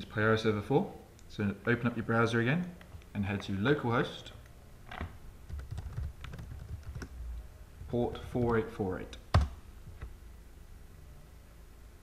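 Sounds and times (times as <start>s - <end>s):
typing on a keyboard: 5.5s - 7.1s.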